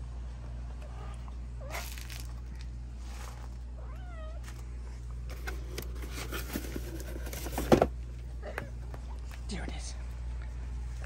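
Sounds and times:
cat meowing: 0:03.8 - 0:04.4.

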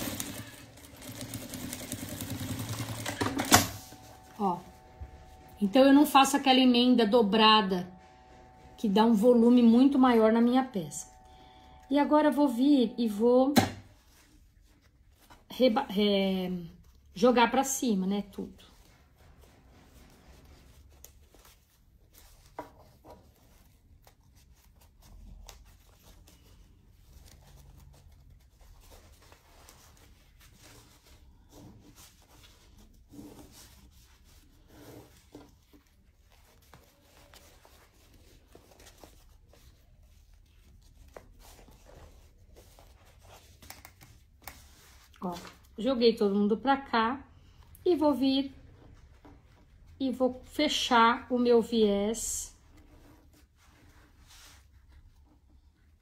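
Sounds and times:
fabric rustling: 0:13.8 - 0:46.4, 0:48.4 - 0:56.0.

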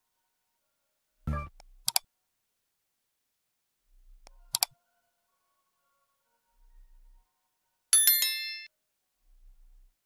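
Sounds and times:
bell ding: 0:08.0 - 0:08.7.

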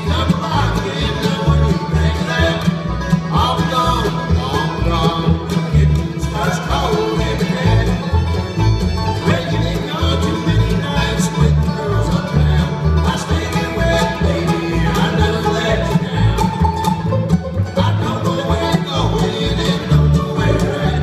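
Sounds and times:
acoustic guitar: 0:00.0 - 0:21.0
banjo: 0:00.0 - 0:21.0
fiddle: 0:00.0 - 0:21.0
mandolin: 0:00.0 - 0:21.0
upright bass: 0:00.0 - 0:21.0.

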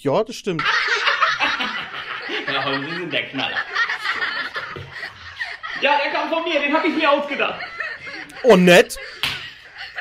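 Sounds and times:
man chuckling: 0:06.8 - 0:10.0.

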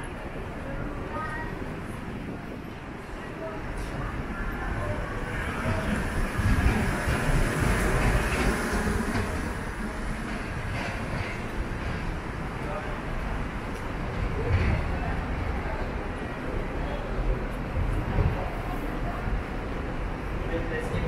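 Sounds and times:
street noise: 0:00.0 - 0:21.0.

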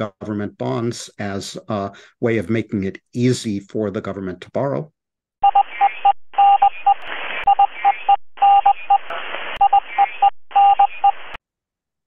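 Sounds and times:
static hiss: 0:08.9 - 0:10.2.

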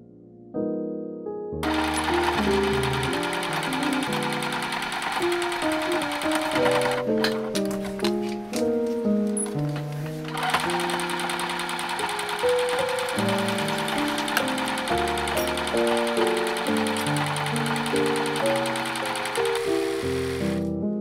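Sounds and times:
background music: 0:00.0 - 0:21.0
sewing machine stitching fast: 0:01.6 - 0:07.5, 0:10.2 - 0:20.7.

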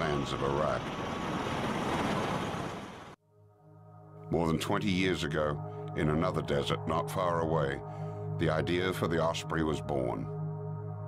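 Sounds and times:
aircraft rotors droning overhead: 0:00.0 - 0:03.2.

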